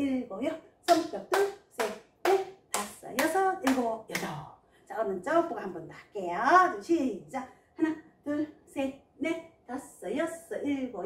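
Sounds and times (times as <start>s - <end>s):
woman counting: 0.0s - 11.0s
hand claps: 0.9s - 4.4s.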